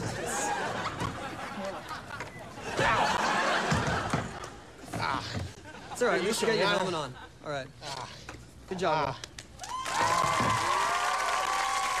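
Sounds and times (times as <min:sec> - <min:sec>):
crowd cheering and applauding: 0:09.6 - 0:12.0.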